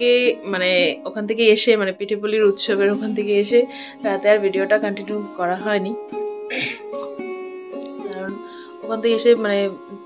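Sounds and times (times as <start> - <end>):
plucked string music: 0.0 - 10.0.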